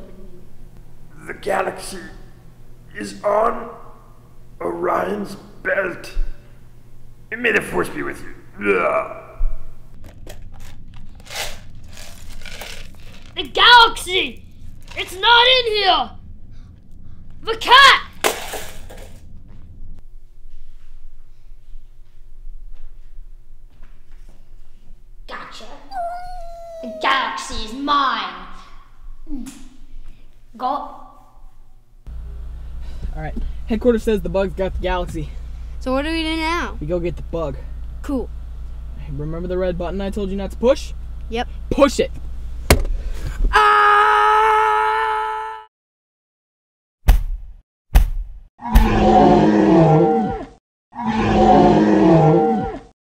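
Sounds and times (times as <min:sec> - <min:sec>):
cat meowing: 0:25.9 - 0:27.1
creature roaring: 0:48.6 - 0:52.9.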